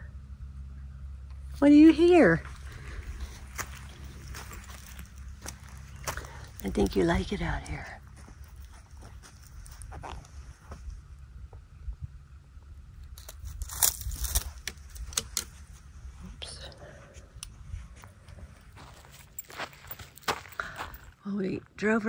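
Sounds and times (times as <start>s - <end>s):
steady low rumble: 0.0s - 22.0s
dry leaves crackling and rustling: 2.4s - 7.1s, 13.0s - 15.2s.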